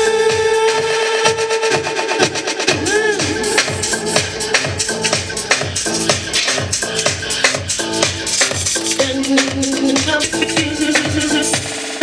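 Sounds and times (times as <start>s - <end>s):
kick drum: 0.0s - 11.8s
techno music over sound system: 0.0s - 12.0s.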